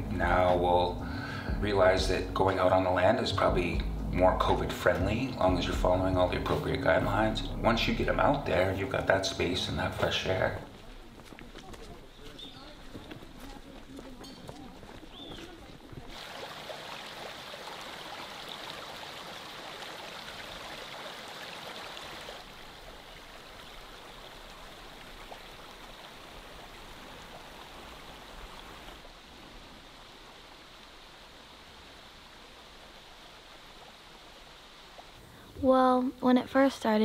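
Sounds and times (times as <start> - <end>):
rushing outdoor ambience: 0.0 - 35.8.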